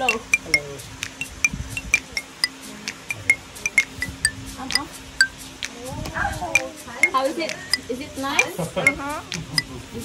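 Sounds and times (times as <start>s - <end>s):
high chiming melody: 0.0s - 5.4s, 6.5s - 9.8s.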